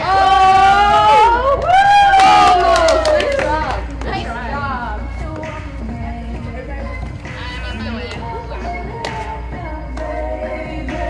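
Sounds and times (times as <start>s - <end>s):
girls cheering: 0.0s - 4.4s
people clapping: 1.2s - 4.4s.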